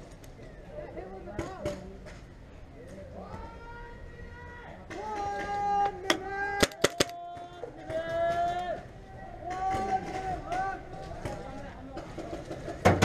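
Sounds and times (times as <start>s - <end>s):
paintball gun cracks: 6.6s - 7.2s.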